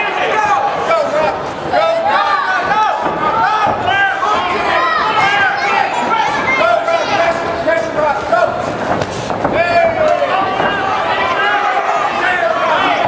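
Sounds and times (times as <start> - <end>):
people shouting over one another: 9.6 - 13.0.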